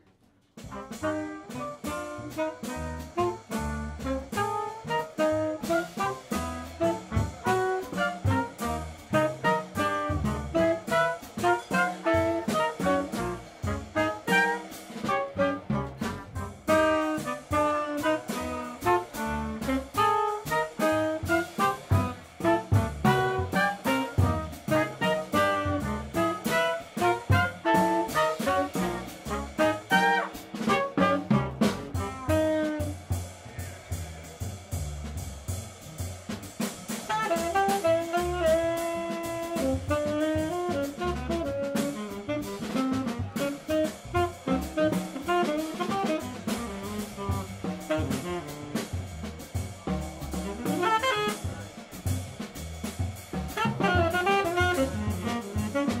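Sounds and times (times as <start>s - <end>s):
drum kit: 0.0s - 56.0s
tenor saxophone: 0.6s - 33.4s, 37.0s - 49.2s, 50.2s - 51.7s, 53.5s - 56.0s
trumpet: 0.6s - 56.0s
upright bass: 0.6s - 56.0s.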